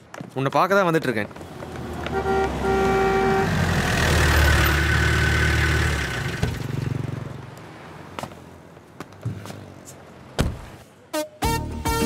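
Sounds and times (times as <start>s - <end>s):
engine and tyre noise: 0.9s - 11.1s
vehicle horn tooting: 2.0s - 3.6s
thump: 10.4s - 10.7s.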